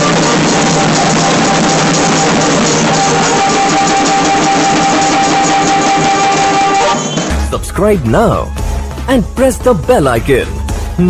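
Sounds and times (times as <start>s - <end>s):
fast snare drumming: 0.0s - 8.4s
barrel drum beats: 0.0s - 11.0s
held high note: 2.9s - 7.6s.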